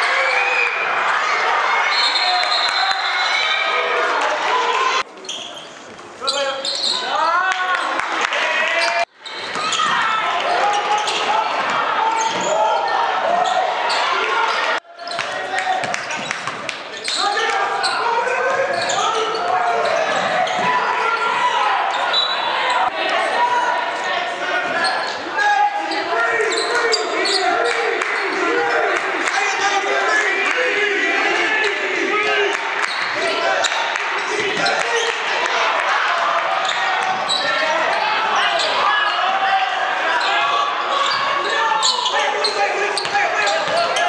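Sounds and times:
shouts and chatter echoing: 0:00.0 - 0:44.0.

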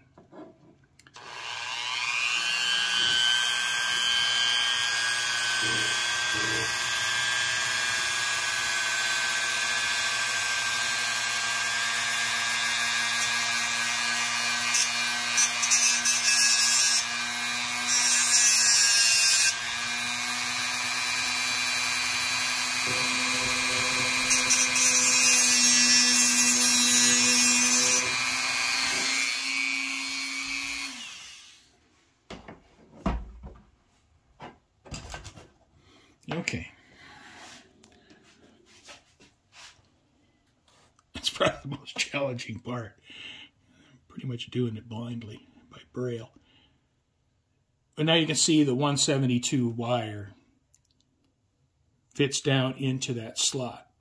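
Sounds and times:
motor winding down: 0:21.8 - 0:24.8
cutoff wheel grinding into metal: 0:22.3 - 0:31.3.

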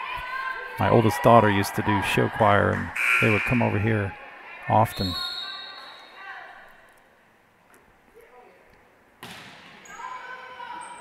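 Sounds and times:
referee's whistle blast: 0:03.0 - 0:03.8.

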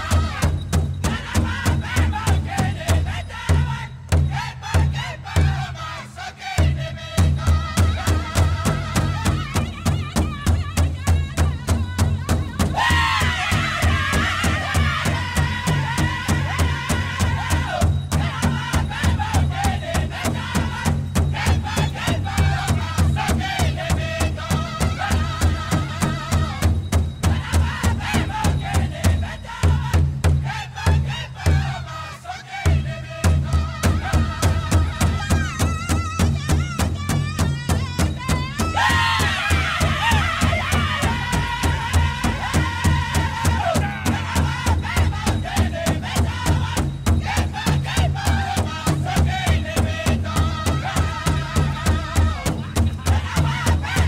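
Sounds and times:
big drum steady beat: 0:00.0 - 0:31.8, 0:32.7 - 0:54.0
high wavering group singing: 0:00.0 - 0:54.0.

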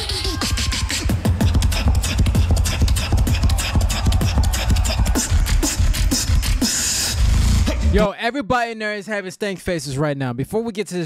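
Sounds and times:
beatboxing through a microphone: 0:00.0 - 0:08.0.

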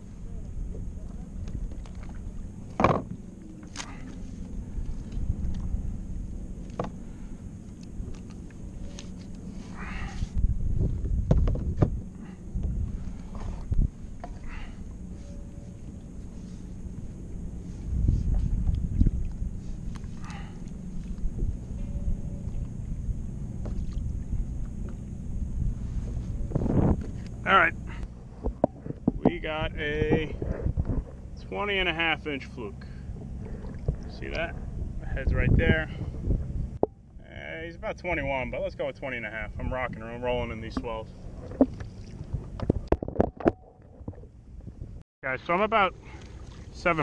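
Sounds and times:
water sloshing against kayak hull: 0:00.0 - 0:37.0, 0:39.6 - 0:45.0, 0:46.0 - 0:47.0
wind rumble on microphone: 0:00.0 - 0:45.0.

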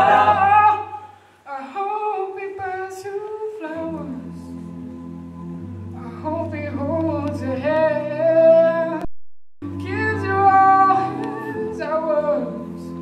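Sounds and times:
male a cappella group singing: 0:00.0 - 0:04.6.

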